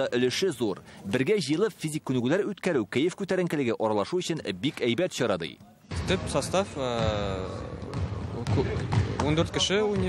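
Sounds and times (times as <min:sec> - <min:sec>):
basketball bouncing on wooden floor: 0:07.7 - 0:10.0.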